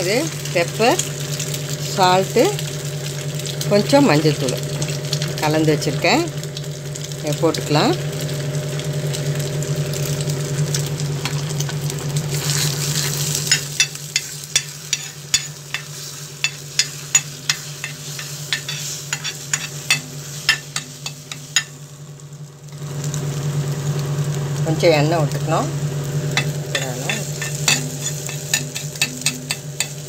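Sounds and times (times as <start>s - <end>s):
egg sizzling on griddle: 0.0s - 3.8s, 8.0s - 24.8s, 25.4s - 30.0s
steady low hum: 0.0s - 30.0s
metal ladle tapping griddle: 13.5s - 21.7s.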